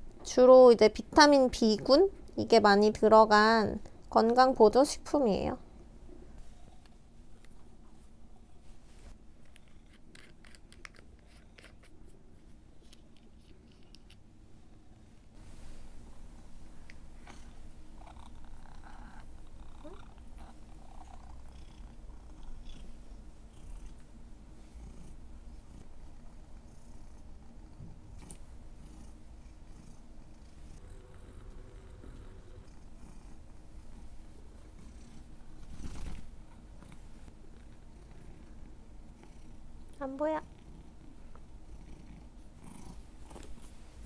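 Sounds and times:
cat purring: 17.2 - 39.7, 40.3 - 43.6.

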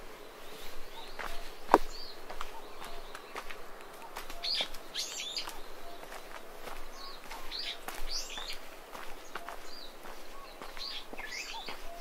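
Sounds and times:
footsteps on dirt path: 0.0 - 12.0
bird chirps: 0.5 - 12.0.

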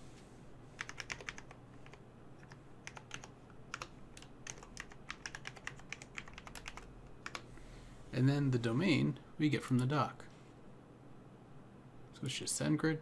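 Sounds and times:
typing on computer keyboard: 0.8 - 7.5.

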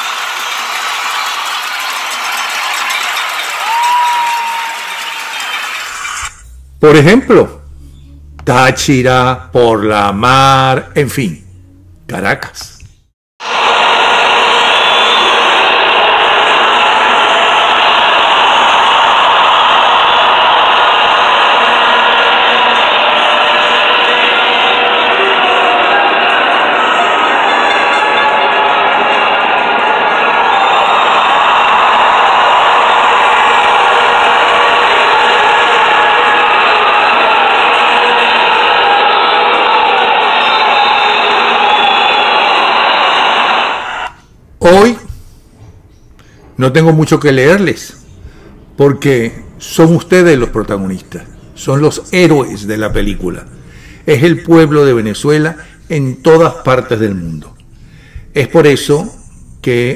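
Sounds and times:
crowd shouting and cheering: 0.0 - 7.6, 13.4 - 44.9.

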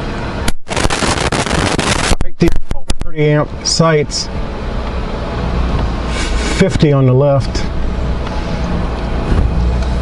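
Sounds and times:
car rolling rumble: 0.0 - 10.0
loud rushing hiss: 0.5 - 2.2.

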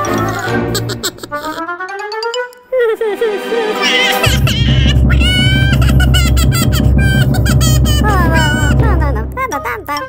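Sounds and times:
cartoon characters crying: 2.6 - 8.7
background music with low beat: 4.2 - 10.0.

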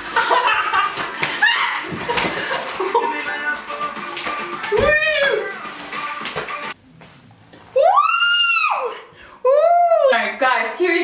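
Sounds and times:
woman squealing: 1.4 - 1.9, 4.7 - 5.5, 7.8 - 10.2
background music: 2.4 - 6.8.

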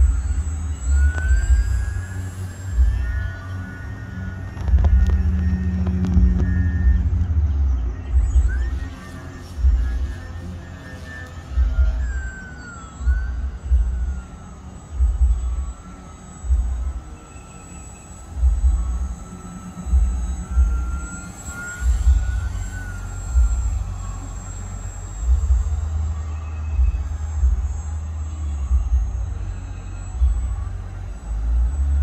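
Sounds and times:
model plane motor whine: 0.0 - 32.0.

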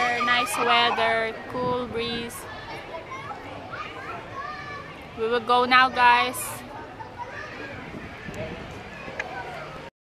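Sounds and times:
children playing and chattering: 0.0 - 9.9
outdoor background noise: 0.0 - 9.9.

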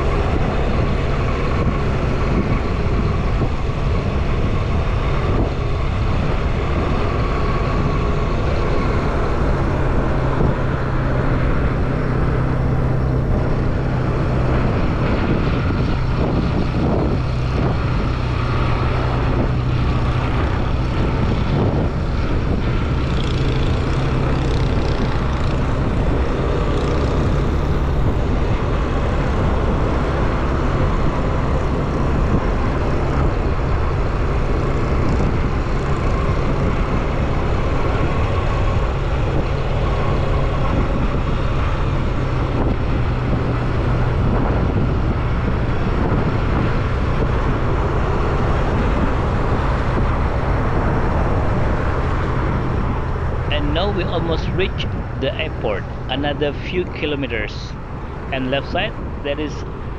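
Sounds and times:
vehicle engine and road noise: 0.0 - 59.9.

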